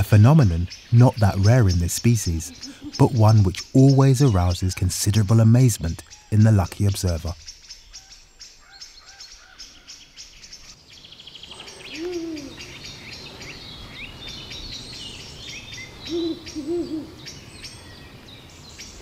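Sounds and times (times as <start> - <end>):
ticking bird trill: 0.0 - 9.2
small songbirds chirping: 0.0 - 19.0
owl hooting: 11.8 - 12.9, 15.9 - 17.4.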